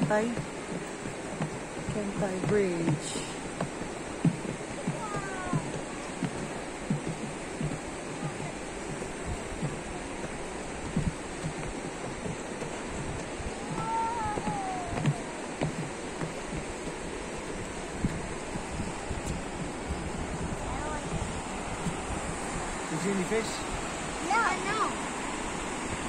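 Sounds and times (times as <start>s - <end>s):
river water pouring over weir: 0.0s - 26.0s
wind buffeting microphone: 0.0s - 26.0s.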